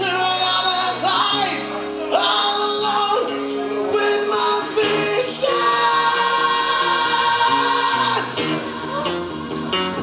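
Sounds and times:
man singing long rock note: 0.0s - 9.5s
acoustic guitar: 0.0s - 10.0s
bass guitar: 0.0s - 10.0s.

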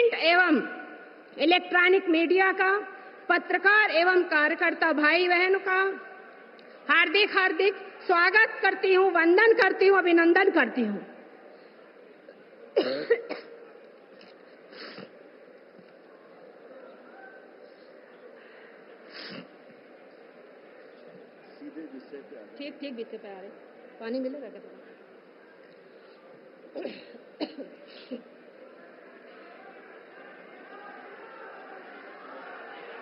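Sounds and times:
woman clearing her throat: 12.8s - 13.6s, 26.7s - 28.3s
woman coughing: 12.8s - 13.6s, 26.7s - 28.3s.

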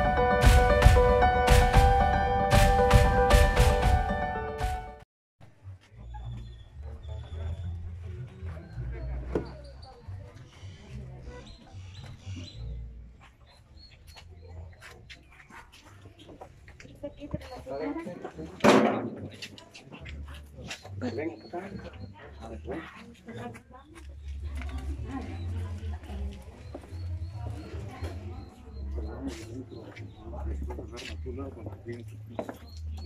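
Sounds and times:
faint voices of people talking: 5.4s - 33.0s.

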